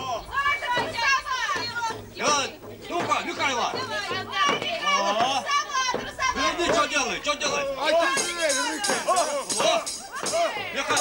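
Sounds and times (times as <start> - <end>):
children and adults talking: 0.0 - 11.0.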